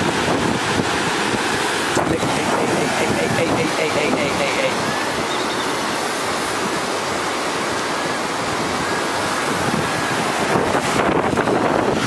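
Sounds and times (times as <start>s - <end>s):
fast-flowing river: 0.0s - 12.0s
wind buffeting microphone: 0.0s - 12.0s.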